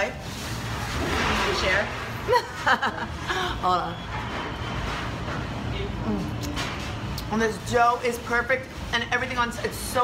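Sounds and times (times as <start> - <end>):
bakery kitchen hum: 0.0 - 10.0.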